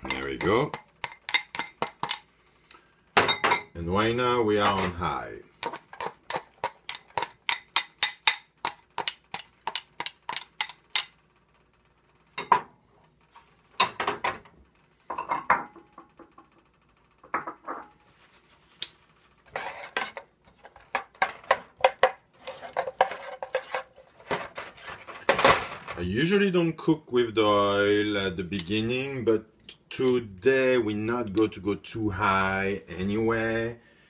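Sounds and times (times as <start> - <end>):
tongs clinking and scraping pans: 0.0 - 2.3, 19.5 - 26.0
tongs knocking against a pan: 5.6 - 11.1.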